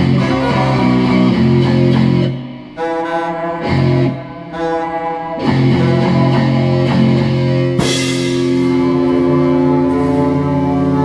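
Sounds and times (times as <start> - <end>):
rock band droning chord: 0.0 - 11.0.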